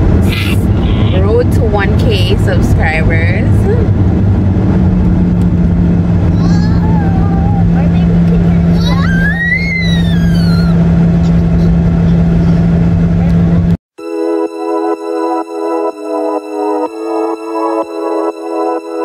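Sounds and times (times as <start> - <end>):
road and engine drone: 0.0 - 13.8
faint voice: 0.2 - 1.2.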